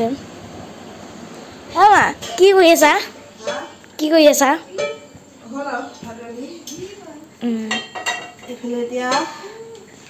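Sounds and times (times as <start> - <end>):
metal pots and utensils clinking: 2.2 - 3.8, 4.7 - 5.2, 7.6 - 9.6.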